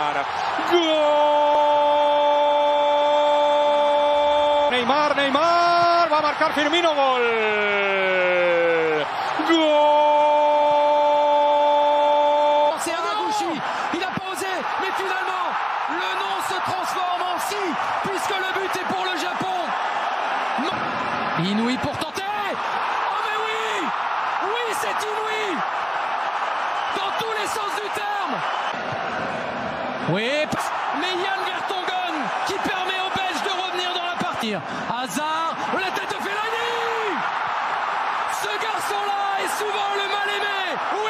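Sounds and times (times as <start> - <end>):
excited commentary: 0.0 - 28.5, 30.0 - 41.0
stadium crowd roaring: 0.0 - 41.0
commentator shouting: 30.1 - 37.4, 38.2 - 41.0.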